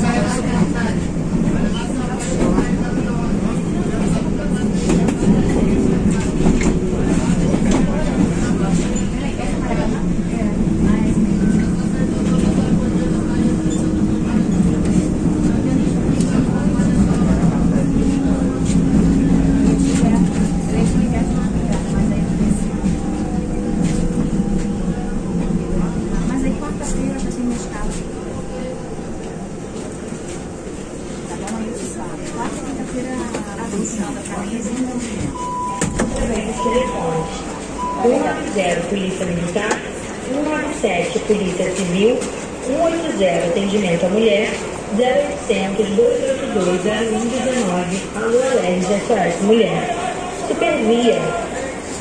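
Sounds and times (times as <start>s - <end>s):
train cabin running noise: 0.0s - 52.0s.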